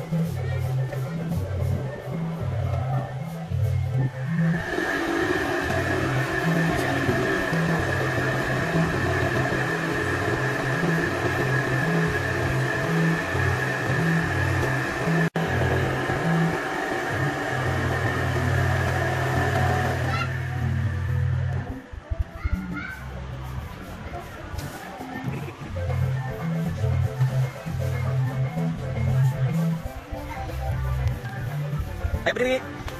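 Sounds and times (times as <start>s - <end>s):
electric air blower whining: 0.0s - 21.9s
background music with bass beat: 0.0s - 32.9s.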